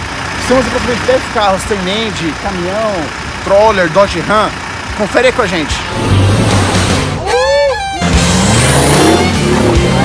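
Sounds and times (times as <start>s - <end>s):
rock music with bass line: 5.8s - 10.0s.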